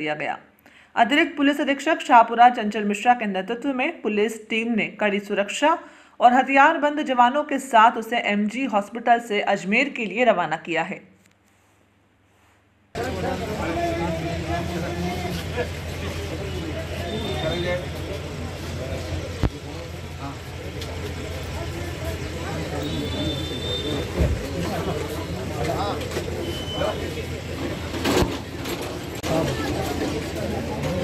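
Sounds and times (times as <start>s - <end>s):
crowd of people talking: 13.0s - 31.0s
vehicle engine idling: 13.0s - 31.0s.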